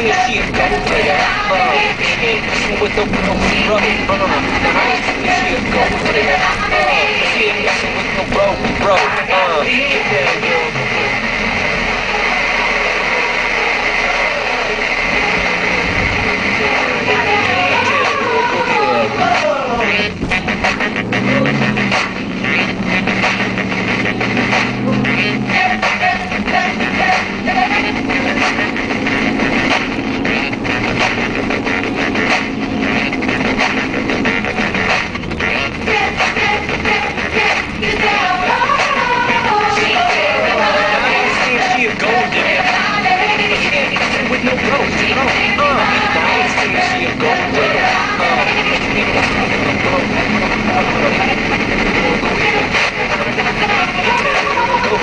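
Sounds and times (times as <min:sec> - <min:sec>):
car engine revving: 0:00.0 - 0:55.0
loud music from car radio: 0:00.0 - 0:55.0.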